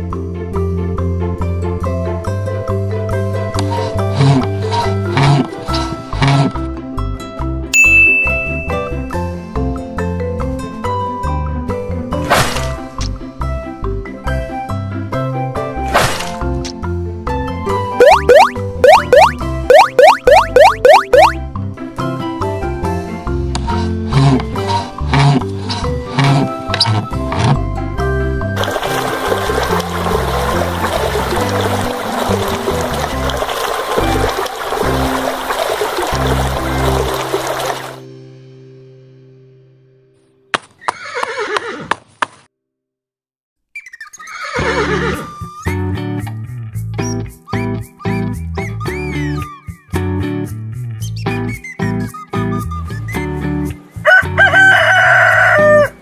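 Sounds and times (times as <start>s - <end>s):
upbeat background music: 17.8s - 21.4s
cartoon boing swoops: 18.0s - 21.4s
horse whinnying: 40.8s - 41.9s, 44.2s - 45.4s.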